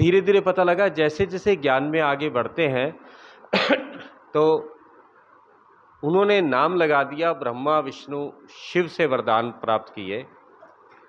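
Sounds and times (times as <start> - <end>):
man clearing his throat: 3.5 - 4.2.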